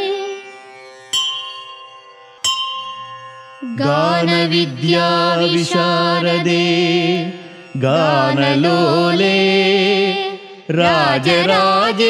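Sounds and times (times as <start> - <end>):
bell ringing: 1.1 - 5.1.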